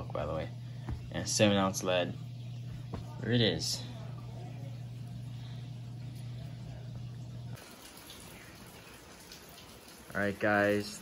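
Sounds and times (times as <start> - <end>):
steady low hum: 0.0 - 7.6.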